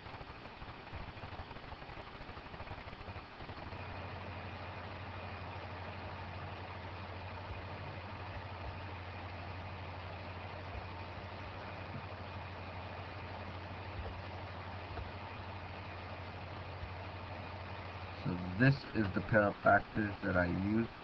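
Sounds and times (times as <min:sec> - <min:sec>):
steady low hum: 0:00.0 - 0:21.0
even hiss: 0:16.1 - 0:20.9.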